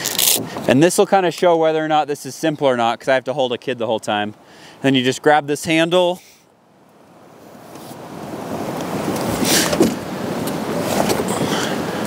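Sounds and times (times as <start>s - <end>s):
wind rushing on microphone: 7.6s - 12.0s.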